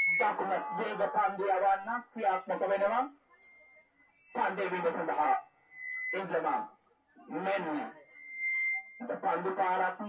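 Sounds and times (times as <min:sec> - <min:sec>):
man speaking: 0:00.0 - 0:03.2, 0:04.4 - 0:05.4, 0:06.1 - 0:08.0, 0:09.0 - 0:10.0
high-pitched tone: 0:03.2 - 0:10.0.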